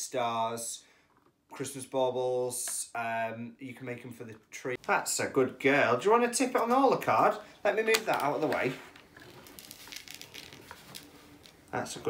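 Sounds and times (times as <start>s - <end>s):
glitter pattering onto card: 7.9s - 11.8s.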